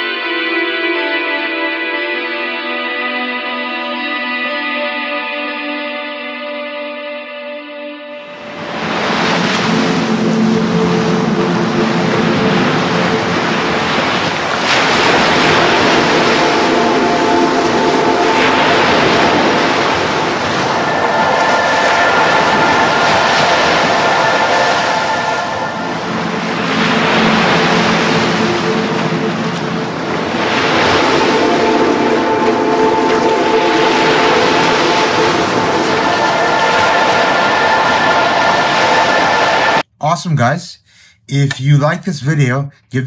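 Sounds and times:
ambient soundscape music: 0:00.0 - 0:39.9.

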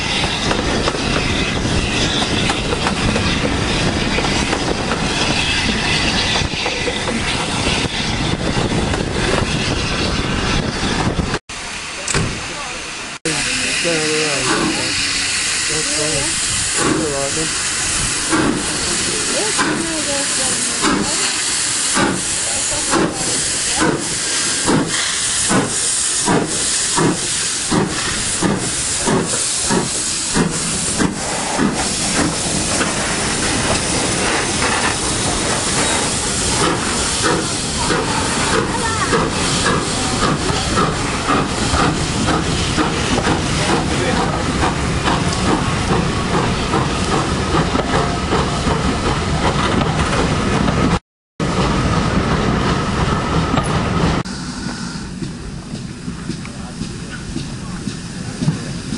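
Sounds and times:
steam hissing: 0:00.0 - 0:58.9
steam locomotive exhaust chuffs: 0:00.0 - 0:58.9.

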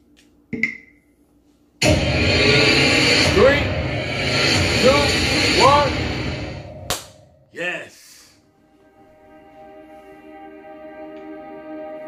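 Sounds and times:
sharp hit: 0:01.8 - 0:07.4
movie trailer title sound: 0:01.8 - 0:07.5.

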